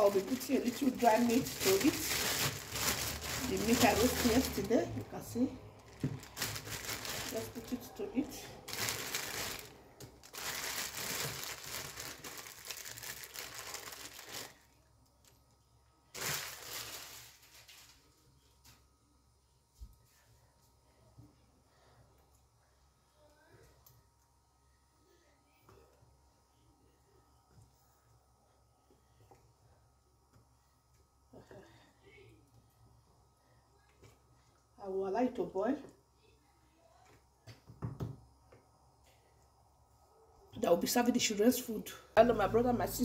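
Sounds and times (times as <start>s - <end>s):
plastic bag crinkling: 0.0s - 14.8s, 16.1s - 18.2s.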